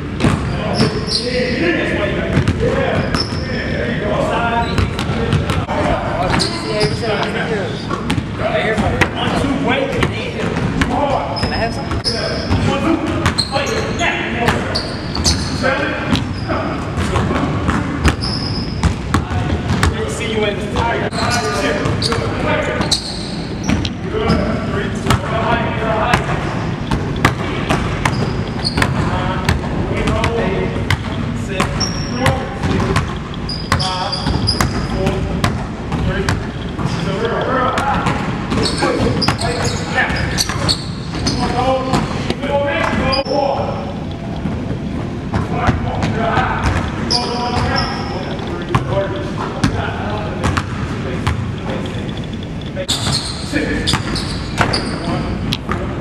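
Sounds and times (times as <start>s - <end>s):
voices talking: 0.0s - 56.0s.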